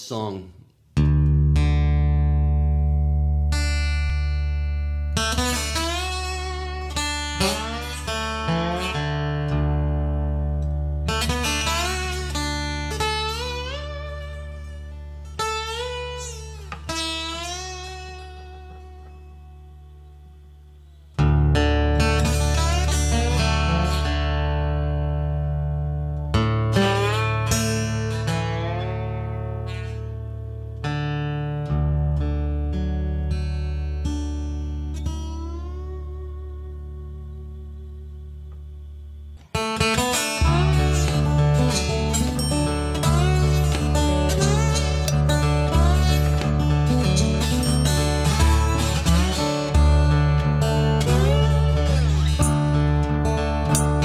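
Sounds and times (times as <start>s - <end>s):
slide guitar playing: 1.0s - 54.0s.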